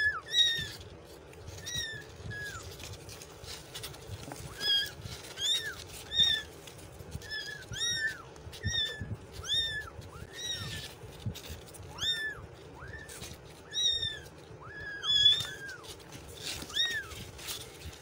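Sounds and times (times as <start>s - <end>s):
kittens mewing: 0.0s - 18.0s.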